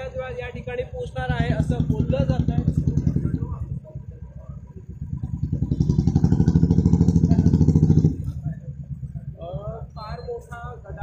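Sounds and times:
men's voices: 0.0 - 4.9, 7.0 - 11.0
motorcycle engine running: 0.0 - 11.0.

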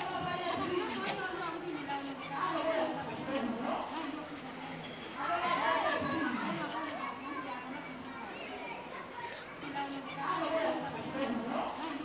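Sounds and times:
babble of voices: 0.0 - 12.0.

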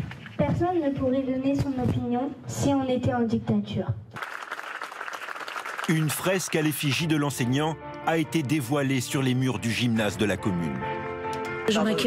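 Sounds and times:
crowd applauding: 4.2 - 7.7.

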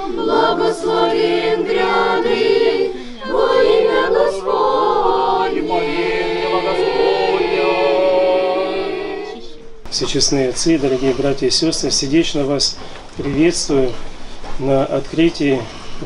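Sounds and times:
female choir singing a chant: 0.0 - 9.7.

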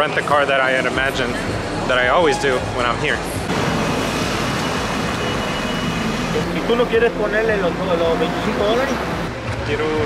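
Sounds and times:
street traffic rushing past: 0.0 - 10.0.

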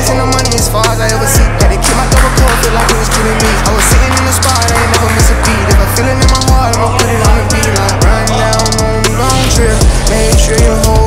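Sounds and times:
hip-hop trap music: 0.0 - 11.0.

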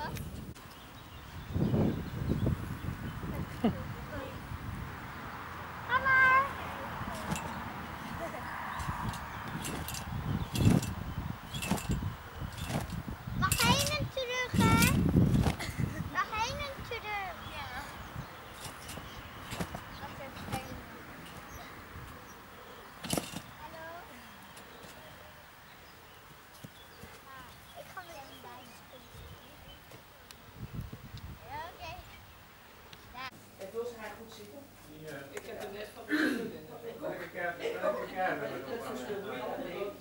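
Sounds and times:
thumps on trampoline mat: 12.6 - 13.0, 18.6 - 19.8, 23.0 - 23.5.

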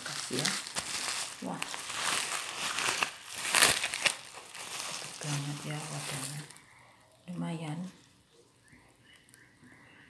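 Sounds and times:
bubble wrap crinkling: 0.0 - 6.7.

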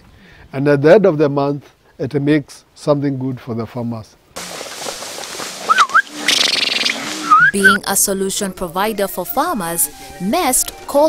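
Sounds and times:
dry hay rustling: 4.4 - 7.9
warbling whistle-like call: 5.7 - 7.8.

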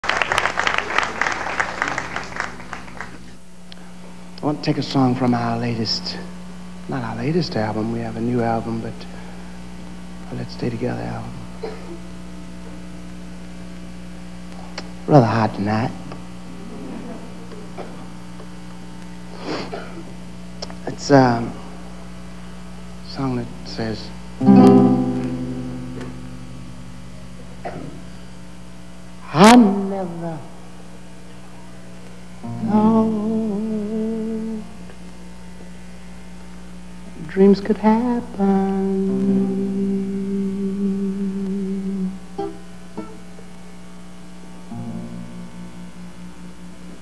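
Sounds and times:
electrical mains hum: 0.0 - 47.0
acoustic guitar chord strummed: 23.3 - 27.9, 29.2 - 30.9, 32.4 - 35.0, 37.2 - 47.0.

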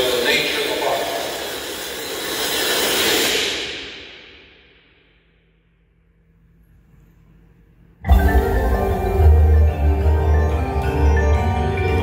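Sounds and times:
electronic white noise swell: 0.0 - 4.2.

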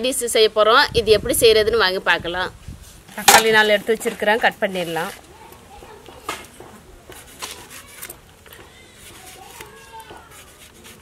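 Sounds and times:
faint voices: 4.7 - 11.0.

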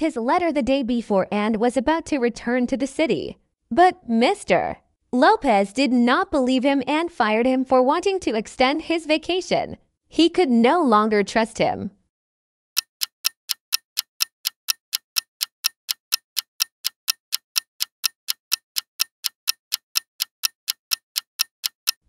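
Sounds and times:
clock ticking: 12.8 - 22.0.

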